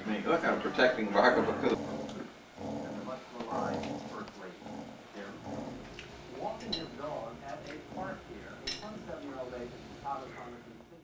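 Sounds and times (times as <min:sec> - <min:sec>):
muffled voices: 0:00.0 - 0:11.0.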